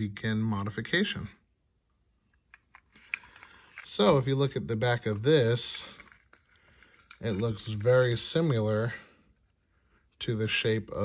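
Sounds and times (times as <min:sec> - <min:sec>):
faint handling noise: 0:02.3 - 0:10.6.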